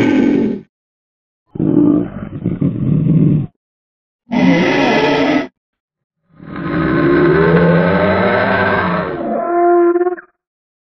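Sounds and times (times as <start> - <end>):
low drawn-out creature call: 0.0 - 0.7, 4.3 - 5.6, 6.3 - 10.4.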